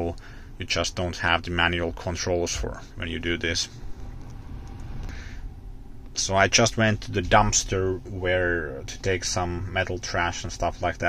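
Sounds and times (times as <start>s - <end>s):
air rushing through vents: 2.6s - 10.1s.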